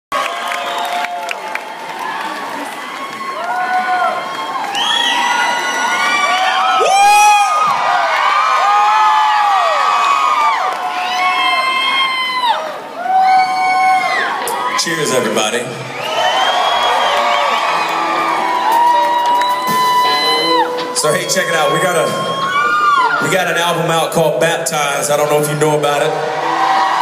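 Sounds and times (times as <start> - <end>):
crowd screaming and whooping: 0.1 - 23.8, 25.9 - 27.0
crowd shouting and clapping: 0.1 - 23.8, 25.5 - 27.0.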